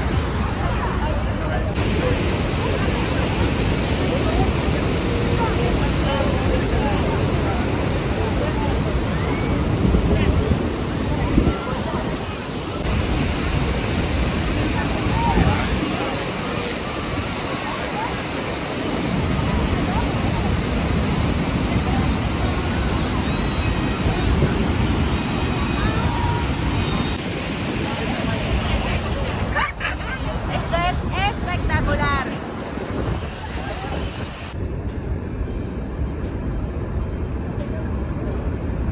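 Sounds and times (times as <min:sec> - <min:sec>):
waterfall roaring: 0:00.0 - 0:38.9.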